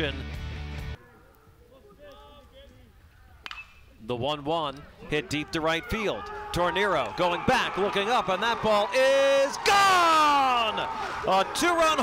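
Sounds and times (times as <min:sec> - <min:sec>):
metal bat hitting baseball: 0:03.4 - 0:03.9.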